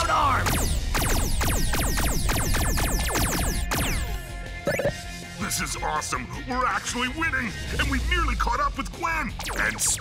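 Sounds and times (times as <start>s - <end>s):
electronic background music: 0.0s - 10.0s
cartoon laser zaps: 0.4s - 4.1s.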